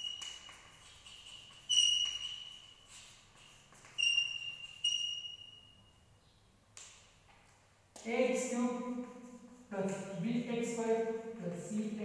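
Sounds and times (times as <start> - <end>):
chalk tapping: 0.0 - 5.4, 8.0 - 12.0
chalk squeaking on blackboard: 0.0 - 5.8.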